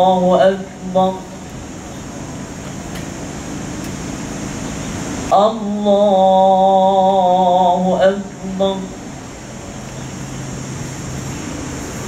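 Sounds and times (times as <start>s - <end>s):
high hiss: 0.0s - 12.0s.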